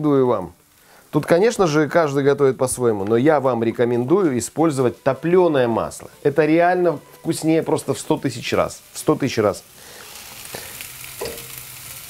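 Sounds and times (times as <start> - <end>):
vegetables sizzling in a frying pan: 0.0 - 12.0.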